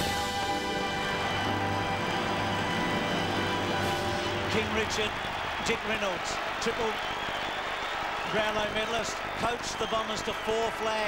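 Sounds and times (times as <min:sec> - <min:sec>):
stadium crowd applauding: 0:00.0 - 0:11.0.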